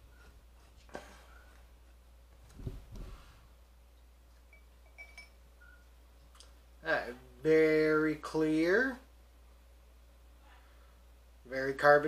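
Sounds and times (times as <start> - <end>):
glass bottle clinking on glass: 4.5 - 5.4.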